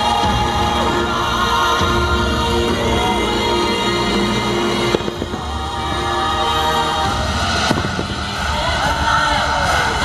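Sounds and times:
orchestral music over speakers: 0.0s - 10.0s
sharp firework bang: 4.9s - 5.8s, 7.4s - 8.5s
small firework pops: 7.6s - 8.3s.

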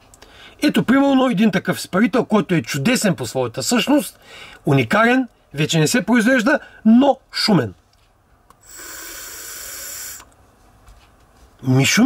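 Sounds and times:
air hissing through vape: 8.6s - 10.4s.

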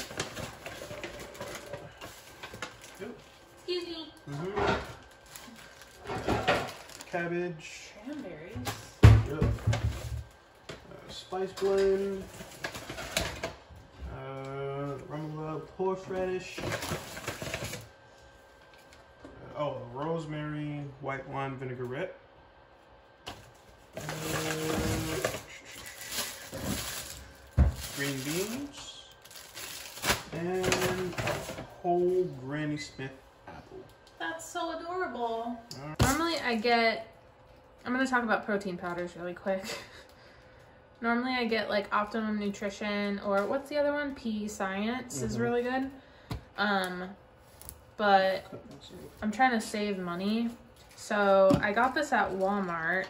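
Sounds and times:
paper bag rustling: 0.0s - 3.8s, 4.8s - 7.2s, 23.9s - 31.7s
plastic packets crinkling: 0.0s - 7.3s, 23.9s - 31.6s
steady low hum: 0.0s - 53.0s.

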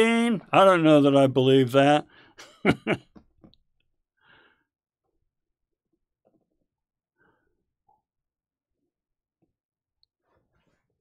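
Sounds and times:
man chuckling softly: 2.4s - 3.3s.

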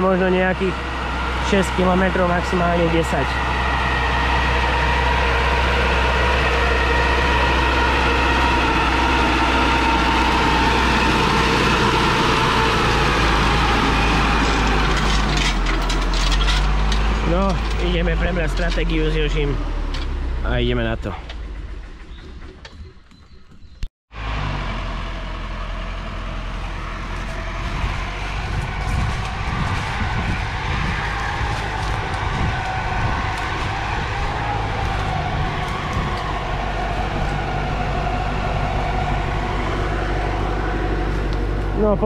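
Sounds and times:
diesel engine running: 0.0s - 42.0s.

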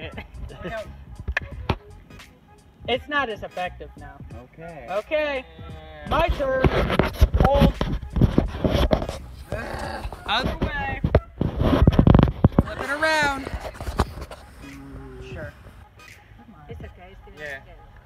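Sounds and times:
people talking and laughing: 0.0s - 18.0s.

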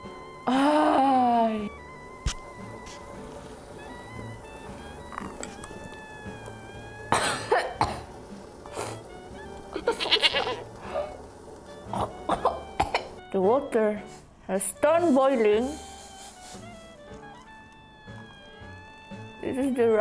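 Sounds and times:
quiet background music: 0.0s - 20.0s
woman coughing and choking: 7.1s - 8.1s, 11.9s - 13.2s.

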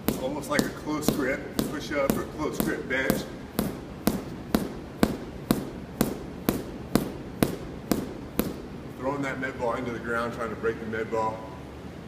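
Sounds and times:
medicine ball slamming floor: 0.0s - 9.0s.

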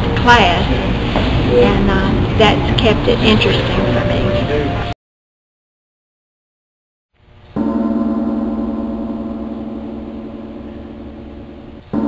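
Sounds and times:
gong ringing: 7.5s - 12.0s.

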